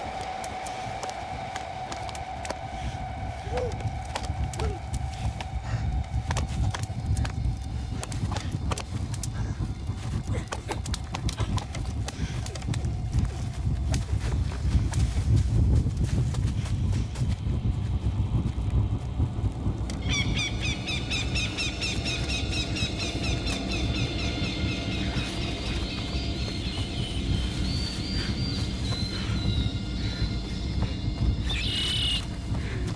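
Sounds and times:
crackling snapping and thudding: 0.0s - 17.3s
heavy low rumble: 0.0s - 32.9s.

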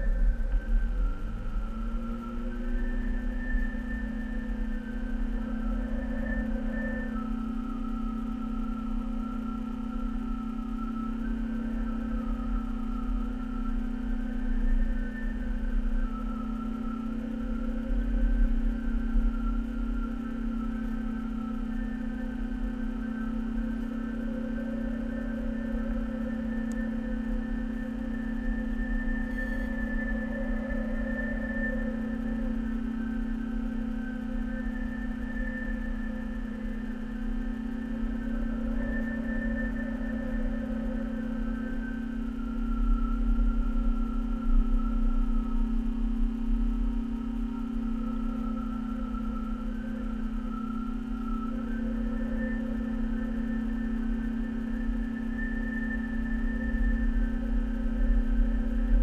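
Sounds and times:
low rumble: 0.0s - 8.1s
droning hum with wavering tones: 0.0s - 59.0s.

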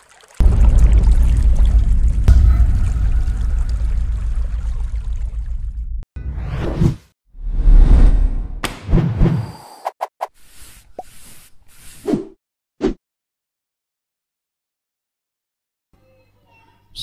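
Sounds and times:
deep rumbling boom: 0.4s - 6.0s.

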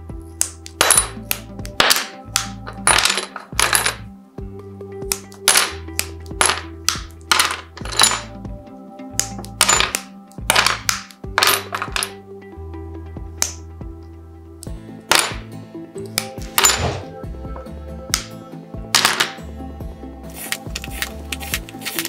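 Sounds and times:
background music: 0.0s - 22.0s
glass pieces dropping onto tiles: 0.8s - 1.2s, 1.8s - 4.1s, 5.1s - 8.3s, 9.2s - 12.2s, 15.1s - 15.5s, 19.0s - 19.4s
glass snapped with nippers: 9.2s - 11.2s.

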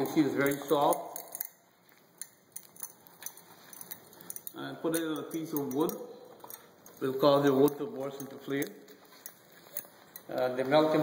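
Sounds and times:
metal tongs clicking on iron: 0.4s - 10.4s.

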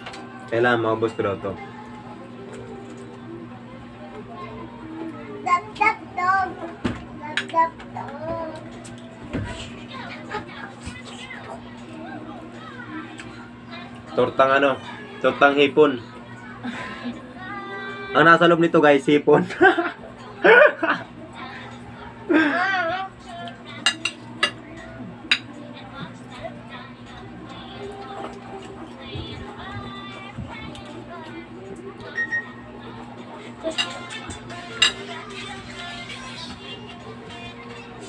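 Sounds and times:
child singing: 4.0s - 14.2s, 14.8s - 18.3s, 20.2s - 38.0s.

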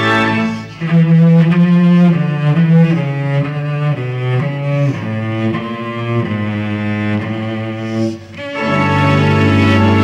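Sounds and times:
cello bowing melody: 0.0s - 10.0s.

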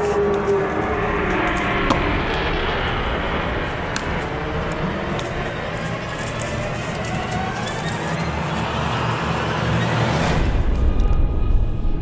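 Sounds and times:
low rumble: 0.0s - 12.0s
rising whoosh: 0.2s - 12.0s.

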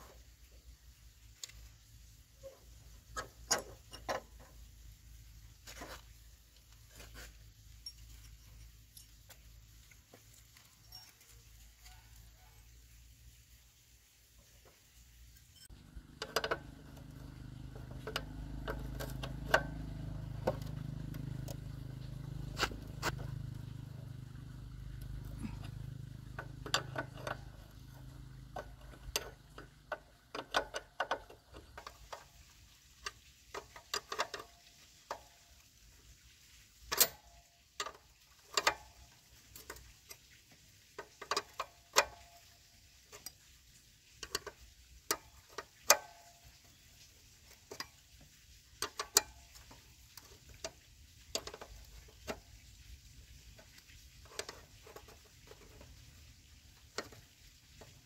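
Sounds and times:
wrench clinking on nuts: 7.7s - 12.0s.

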